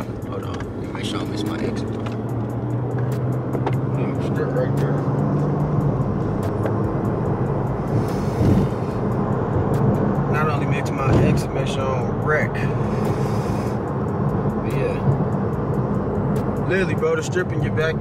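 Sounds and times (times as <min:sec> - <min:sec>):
car road and engine noise: 0:00.0 - 0:18.0.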